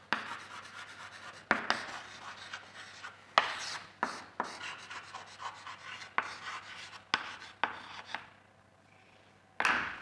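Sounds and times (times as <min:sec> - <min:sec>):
chalk scratching on blackboard: 0:00.1 - 0:08.2
chalk tapping on board: 0:00.1 - 0:08.3.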